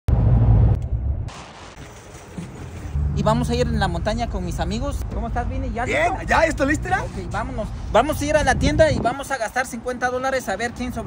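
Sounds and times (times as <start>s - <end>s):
quiet outdoor background: 0.1s - 11.0s.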